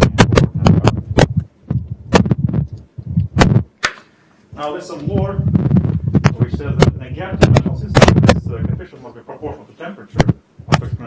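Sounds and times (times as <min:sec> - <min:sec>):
low thumps: 0:00.0 - 0:03.7, 0:05.0 - 0:08.9, 0:10.2 - 0:11.0
man talking: 0:04.5 - 0:05.5, 0:06.3 - 0:11.0
sharp knocks and clicks: 0:06.1 - 0:08.5.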